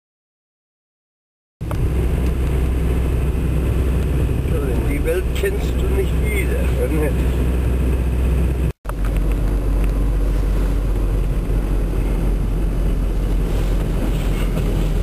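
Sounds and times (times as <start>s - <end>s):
car engine and road rumble: 1.6s - 15.0s.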